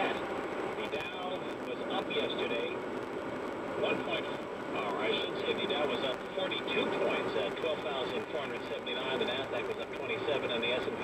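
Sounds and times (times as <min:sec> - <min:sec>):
radio news speech: 0:00.0 - 0:11.0
road noise: 0:00.0 - 0:11.0.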